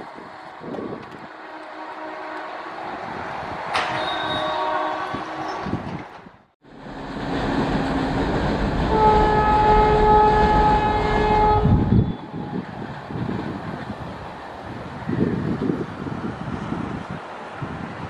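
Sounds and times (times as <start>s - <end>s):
electric train running at speed: 0.0s - 18.0s
train horn blasts: 1.2s - 2.8s, 3.8s - 5.6s, 8.9s - 12.4s.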